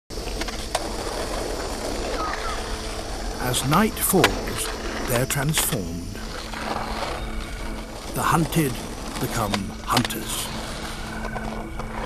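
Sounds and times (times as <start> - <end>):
skateboard wheels rolling on asphalt: 0.1 - 12.0.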